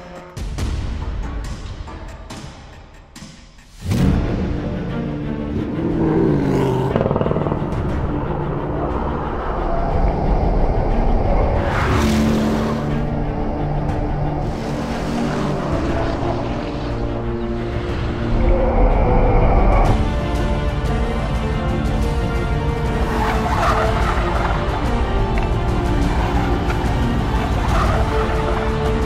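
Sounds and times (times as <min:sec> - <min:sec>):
soundtrack music: 0:00.0 - 0:29.0
rushing swells: 0:05.2 - 0:29.0.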